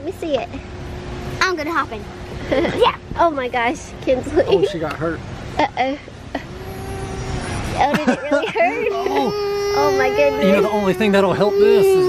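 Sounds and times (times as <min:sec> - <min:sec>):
little girl crying: 0:05.8 - 0:12.0
parent saying oh: 0:07.0 - 0:12.0.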